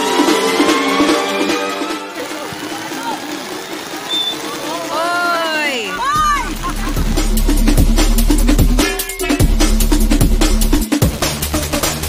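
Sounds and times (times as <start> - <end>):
steady rain hiss: 1.4 - 10.9
voices: 2.1 - 8.2.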